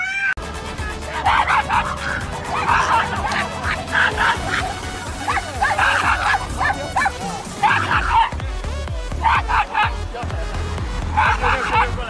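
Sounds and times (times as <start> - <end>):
background music: 0.0 - 12.0
dog yipping: 1.2 - 8.4, 9.2 - 9.9.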